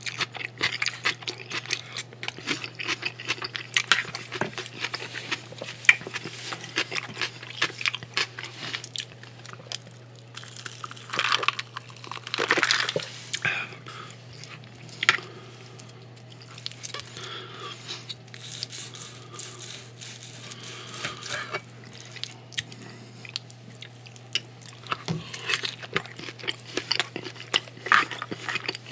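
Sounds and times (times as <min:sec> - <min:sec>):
close chewing with wet mouth clicks: 0:00.0 - 0:09.9
knife and fork scraping board: 0:18.4 - 0:21.6.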